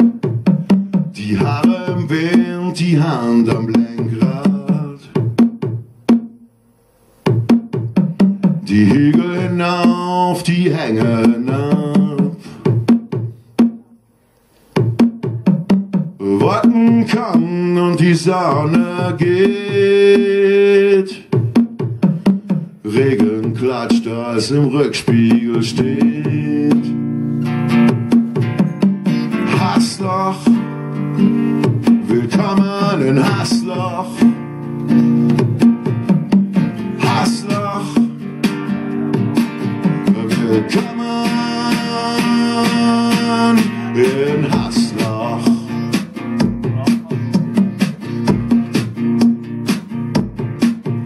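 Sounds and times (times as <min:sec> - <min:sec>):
wood-block-like percussion notes: 0:00.0 - 0:02.8, 0:03.4 - 0:06.4, 0:07.3 - 0:10.2, 0:14.7 - 0:24.1, 0:27.7 - 0:51.0
acoustic guitar strumming: 0:00.0 - 0:51.0
person singing: 0:01.1 - 0:05.2, 0:08.6 - 0:12.8, 0:16.2 - 0:21.3, 0:22.8 - 0:27.0, 0:29.1 - 0:35.0, 0:36.7 - 0:38.5, 0:39.7 - 0:48.6.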